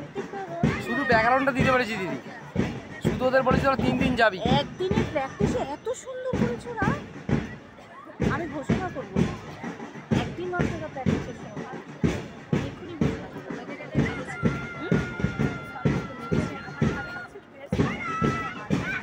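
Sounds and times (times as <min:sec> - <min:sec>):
marching drumbeat: 0:00.0 - 0:19.0
voices: 0:00.0 - 0:19.0.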